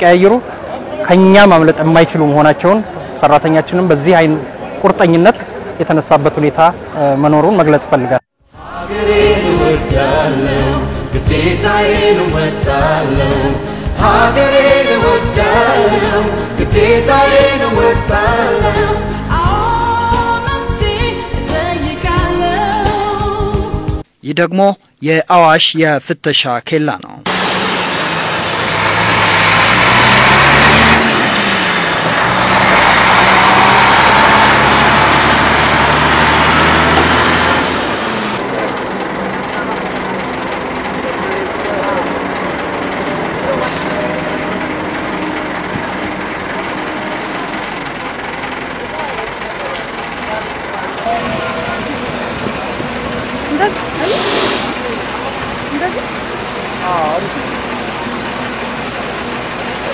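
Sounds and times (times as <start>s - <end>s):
heavy truck engine running: 8.6s - 24.0s, 27.3s - 59.9s
brief hiss: 54.0s - 54.9s.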